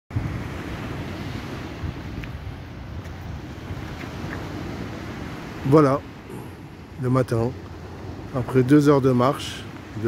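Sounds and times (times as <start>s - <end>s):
small waves breaking: 0.1s - 10.0s
wind buffeting microphone: 0.1s - 10.0s.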